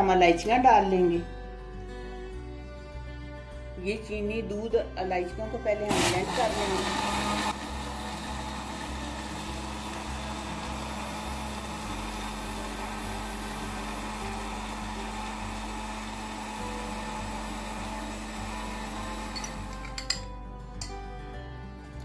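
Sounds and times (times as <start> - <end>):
electric blender running: 5.9 - 20.1.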